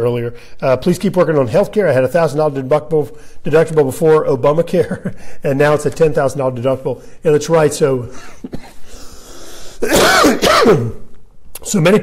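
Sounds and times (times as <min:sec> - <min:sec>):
man coughing: 0:08.1 - 0:09.0, 0:09.8 - 0:11.0
breathy intake: 0:08.6 - 0:10.0.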